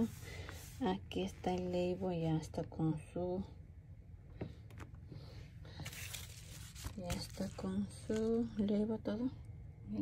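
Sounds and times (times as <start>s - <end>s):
plastic envelope rustling: 5.7s - 8.6s.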